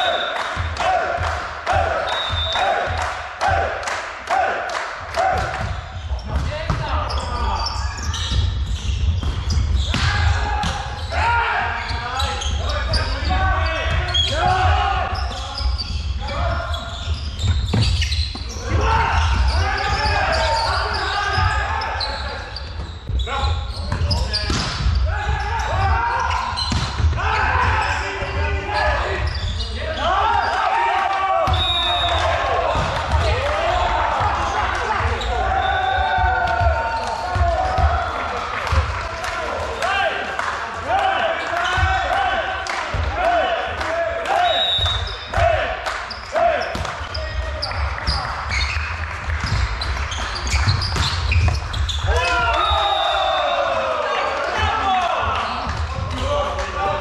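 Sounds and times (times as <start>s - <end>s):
players shouting in echoing hall: 0.0s - 57.0s
ball striking floor: 9.1s - 10.8s, 49.4s - 52.0s.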